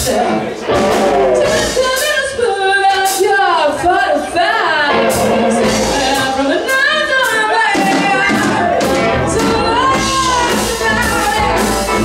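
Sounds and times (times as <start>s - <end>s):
live blues band playing: 0.0s - 12.0s
woman singing: 0.0s - 12.0s.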